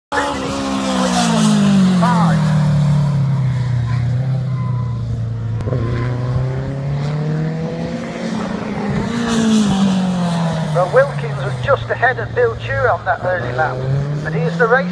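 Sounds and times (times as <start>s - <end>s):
racing sidecar engine: 0.1s - 14.9s.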